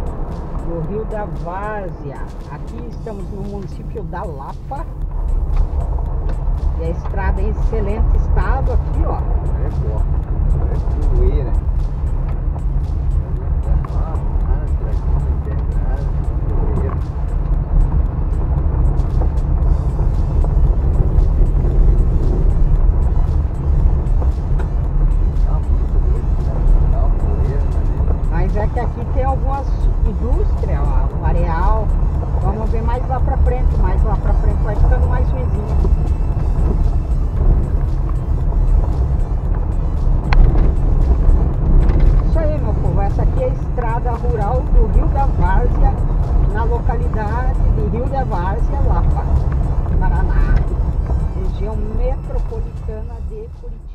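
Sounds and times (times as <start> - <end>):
car rumbling on gravel: 0.0 - 53.0
music with singing: 0.0 - 53.9.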